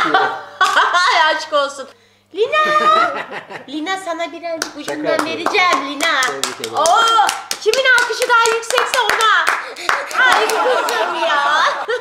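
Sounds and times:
hands clapping: 4.6 - 11.1
excited voices: 5.2 - 12.0.

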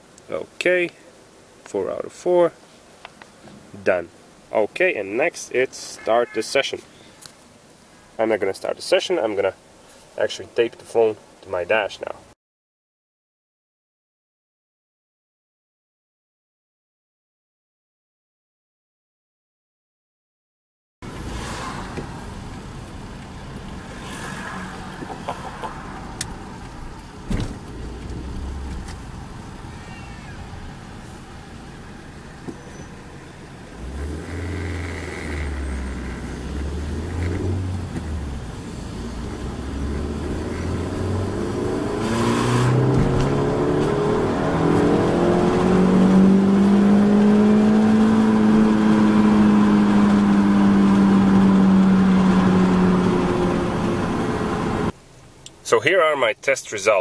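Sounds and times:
car engine revving: 21.0 - 54.9.

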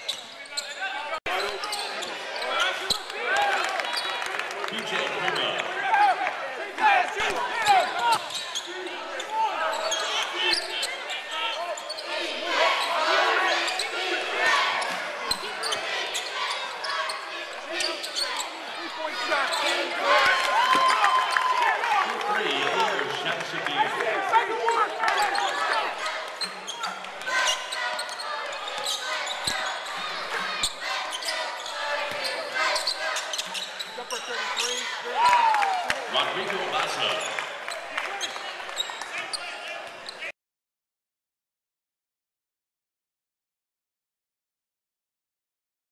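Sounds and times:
players shouting: 4.8 - 39.9
shoes squeaking on hardwood court: 8.1 - 11.0, 14.8 - 18.6, 25.4 - 35.0.

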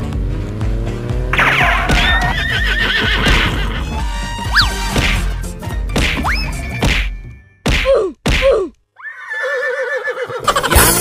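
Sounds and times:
music: 0.0 - 7.7, 10.4 - 11.0.

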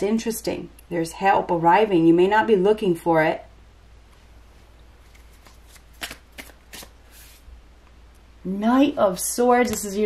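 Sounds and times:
cards swishing: 5.0 - 7.5
card snaps and flicks: 5.1 - 6.9.

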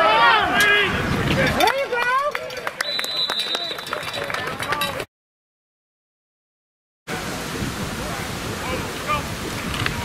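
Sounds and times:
people shouting: 0.0 - 1.0
referee's whistle: 2.8 - 4.1.

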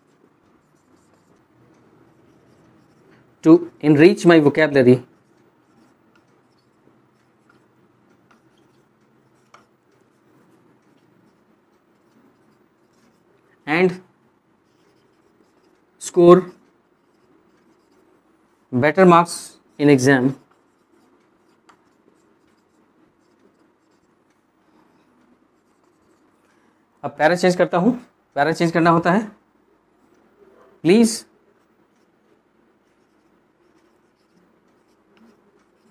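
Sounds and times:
marker scratching on whiteboard: 0.0 - 26.7, 30.0 - 35.9
light ticks of marker: 5.2 - 13.5.

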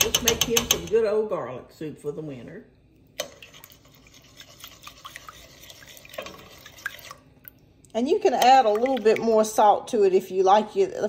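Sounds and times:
spoon stirring broth: 3.1 - 7.7.

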